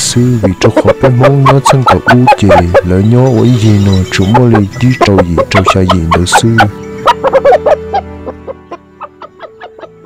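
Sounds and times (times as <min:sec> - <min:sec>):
background music held note: 0:00.0 - 0:10.0
chickens clucking: 0:00.0 - 0:10.0.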